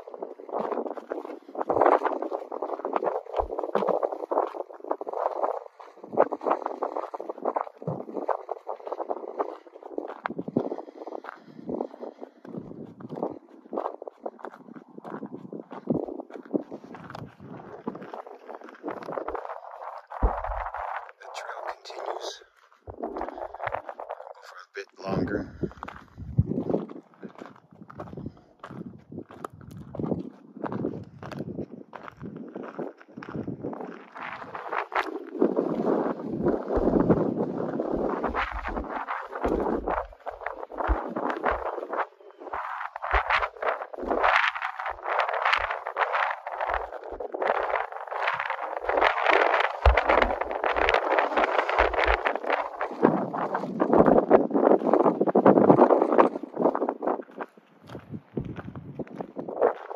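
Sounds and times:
footsteps on gravel: 0.0 - 59.9
low rumbles on microphone: 1.4 - 32.4, 33.1 - 57.2, 57.9 - 59.9.

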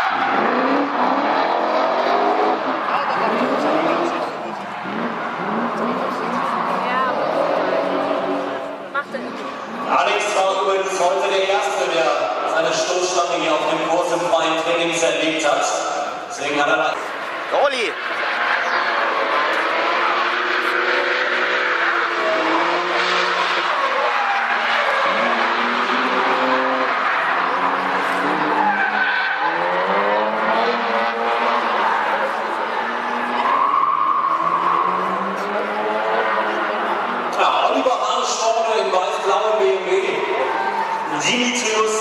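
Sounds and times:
car engine at high revs: 0.0 - 42.0
tyres squealing and skidding: 0.0 - 42.0.

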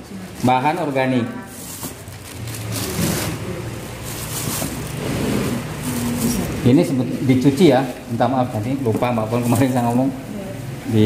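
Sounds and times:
plastic bags crinkling: 0.2 - 10.2.

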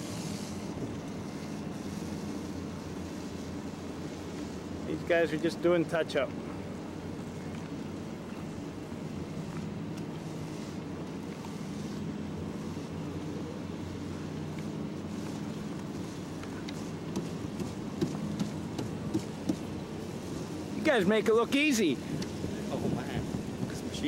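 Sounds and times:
wind noise on microphone: 21.8 - 24.0.

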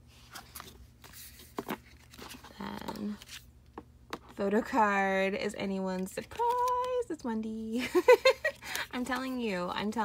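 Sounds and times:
paper and cardboard rustling: 0.1 - 3.5, 6.0 - 6.9.

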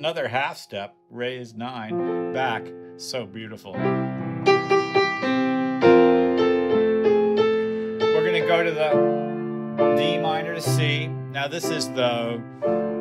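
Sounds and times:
grand piano chords: 0.9 - 13.0.

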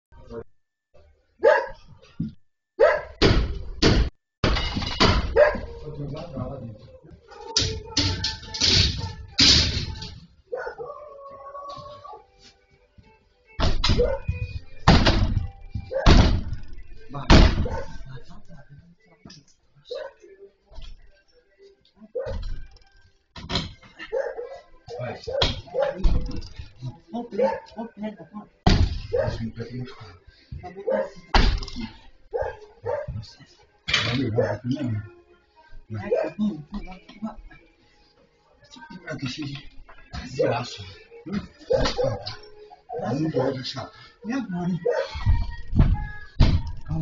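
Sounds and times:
dog barking: 1.4 - 1.8, 2.8 - 3.2, 5.3 - 5.8, 10.5 - 11.0, 14.0 - 14.3, 15.9 - 16.2, 17.6 - 18.1, 19.9 - 20.2, 22.1 - 22.4, 24.0 - 26.1, 27.3 - 27.9, 29.1 - 29.4, 30.7 - 31.3, 32.3 - 33.2, 34.3 - 34.7, 36.0 - 36.4, 41.6 - 43.7, 44.8 - 45.2.

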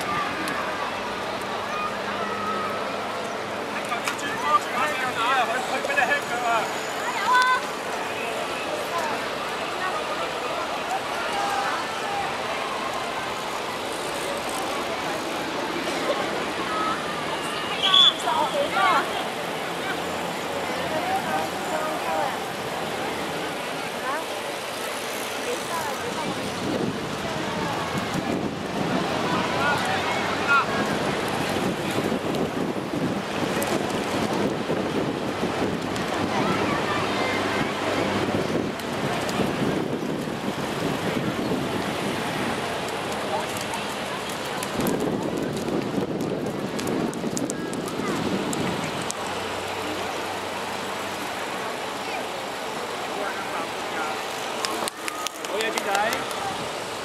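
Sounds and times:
faint distant voices: 0.0 - 57.0
outdoor background noise: 0.0 - 57.0
wind on microphone: 25.8 - 49.2.

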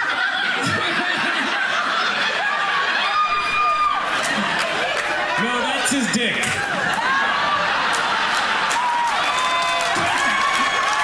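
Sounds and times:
audience laughing: 0.0 - 3.2, 4.1 - 9.0, 9.7 - 11.0.

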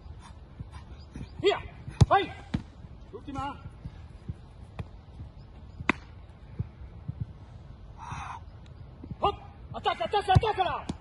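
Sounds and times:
football being kicked: 1.6 - 2.8, 5.8 - 6.7, 10.2 - 11.0.

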